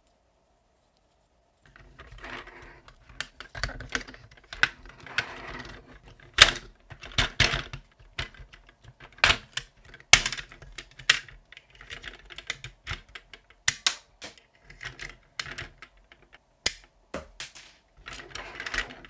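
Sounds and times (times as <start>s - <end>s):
plastic toy parts clicking and snapping: 2.9s - 5.0s, 5.6s - 19.0s.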